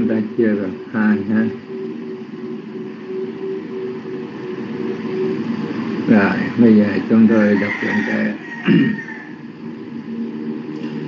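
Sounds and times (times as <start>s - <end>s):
faint intermittent hum: 0.0s - 11.0s
steady background noise: 0.0s - 11.0s.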